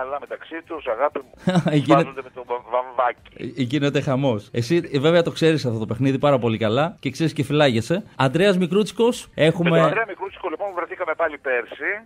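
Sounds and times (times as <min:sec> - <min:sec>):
man talking over telephone: 0:00.0 - 0:04.1, 0:09.3 - 0:12.0.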